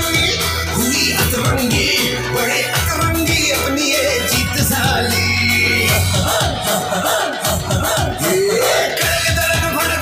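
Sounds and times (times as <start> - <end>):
loud music with heavy bass: 0.0 - 10.0.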